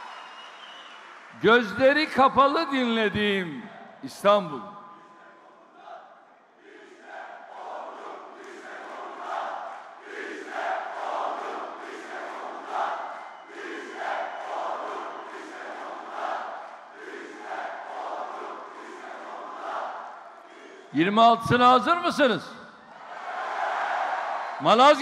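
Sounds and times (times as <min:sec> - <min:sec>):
audience chanting in rhythm: 0:05.0 - 0:21.0.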